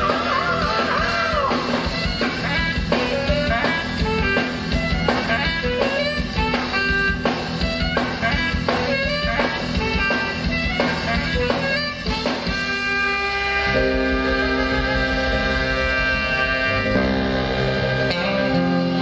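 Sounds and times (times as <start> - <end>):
drum kit steady beat: 0.0 - 19.0
saxophones and keyboard: 0.0 - 19.0.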